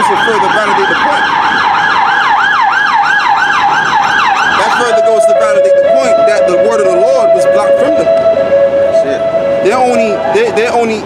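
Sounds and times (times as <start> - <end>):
siren in fast yelp mode: 0.0 - 11.0.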